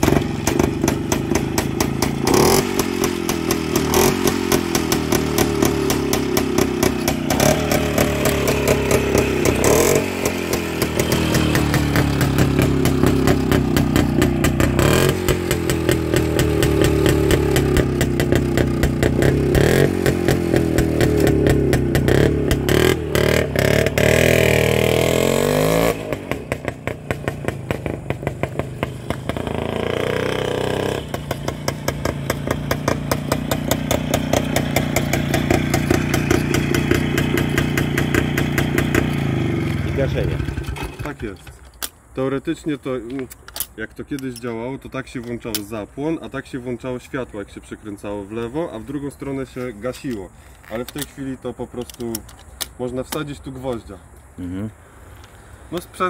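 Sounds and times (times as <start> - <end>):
two-stroke motorcycle engine revving: 0.0 - 41.3.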